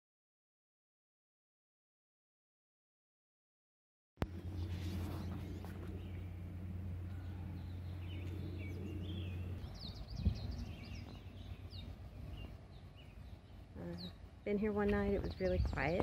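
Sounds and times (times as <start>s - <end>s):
low steady hum: 4.2s - 16.0s
small birds chirping: 4.2s - 16.0s.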